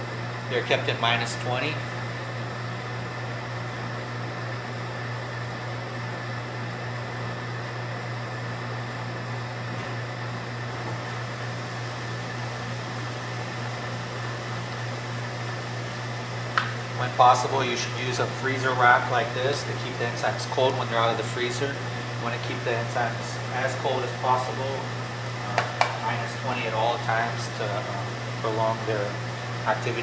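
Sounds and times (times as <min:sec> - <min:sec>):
fan-like mechanical hum: 0:00.0 - 0:30.0.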